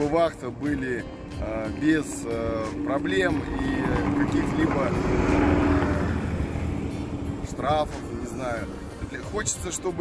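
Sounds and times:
bus engine rumbling: 1.2s - 9.4s.

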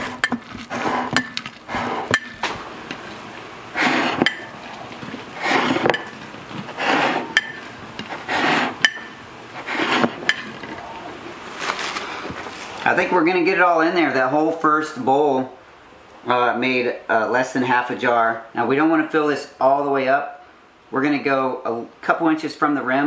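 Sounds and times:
hand clinking glass jar: 4.0s - 4.6s, 7.3s - 7.7s, 8.8s - 9.2s
squelching crunch of packed cabbage: 11.3s - 12.9s.

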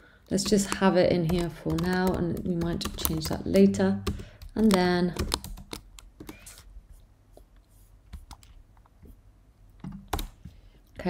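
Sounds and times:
typing on computer keyboard: 0.3s - 6.6s, 9.8s - 10.4s.

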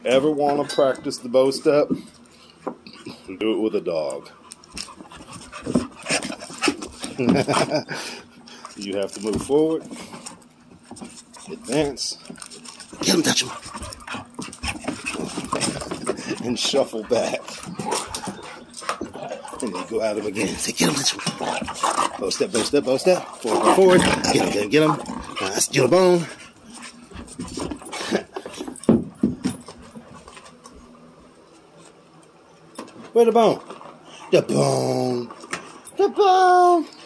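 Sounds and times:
dogs scuffling on carpet: 8.5s - 32.1s.

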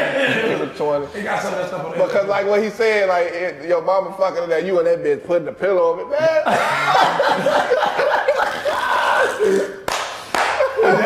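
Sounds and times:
sharp hand claps: 9.8s - 10.8s.

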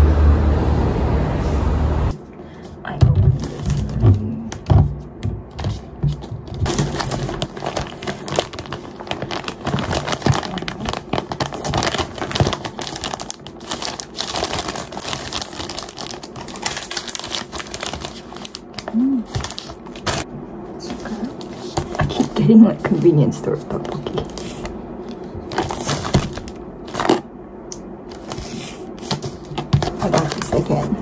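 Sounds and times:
plastic packaging crinkling: 5.5s - 27.3s, 28.1s - 30.9s.

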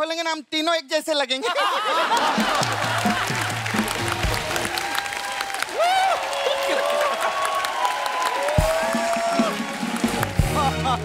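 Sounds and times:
audience applauding: 1.9s - 11.0s.

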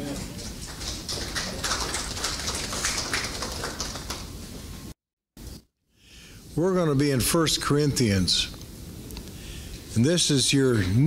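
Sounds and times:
audience clapping: 0.0s - 4.6s.

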